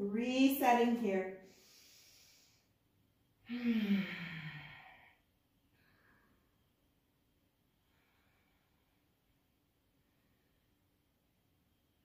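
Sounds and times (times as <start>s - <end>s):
woman sighing: 3.5s - 5.0s.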